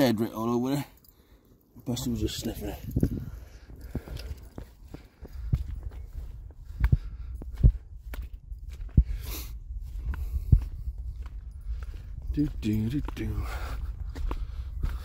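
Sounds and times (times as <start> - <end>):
wind rumble on microphone: 2.4 - 15.0
footsteps on muddy grass: 2.9 - 15.0.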